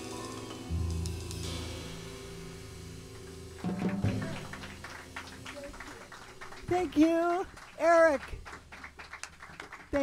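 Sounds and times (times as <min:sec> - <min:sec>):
piano and upright bass chord: 0:00.0 - 0:07.4.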